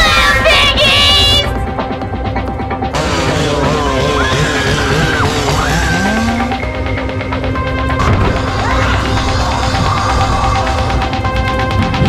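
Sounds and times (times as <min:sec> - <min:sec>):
loud music with heavy rumble: 0:00.0 - 0:12.0
wavering sliding tones: 0:03.0 - 0:12.0.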